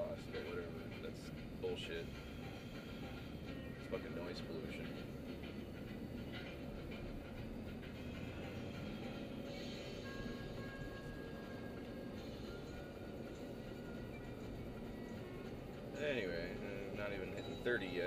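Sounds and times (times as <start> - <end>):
faint music: 0.0 - 18.0
road and engine noise: 0.0 - 18.0.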